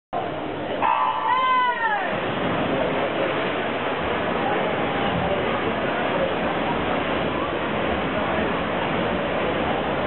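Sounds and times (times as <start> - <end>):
spectators in pool hall: 0.2 - 10.0
swimmers splashing: 0.8 - 10.0.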